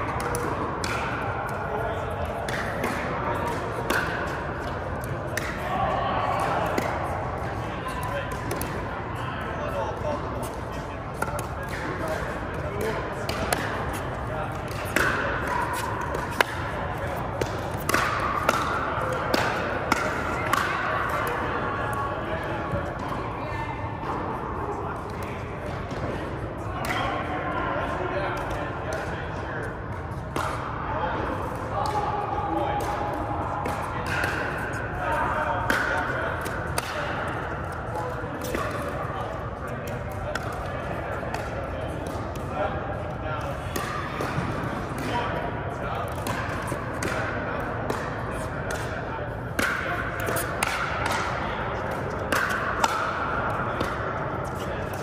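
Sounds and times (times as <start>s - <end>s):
murmur of background voices: 0.0s - 55.0s
pickleball being struck: 11.2s - 13.9s, 14.6s - 21.4s, 49.6s - 51.4s.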